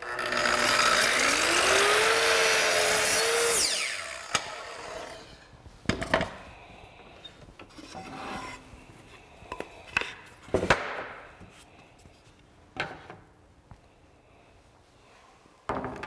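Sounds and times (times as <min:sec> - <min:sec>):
track saw cutting wood: 0:00.0 - 0:05.5.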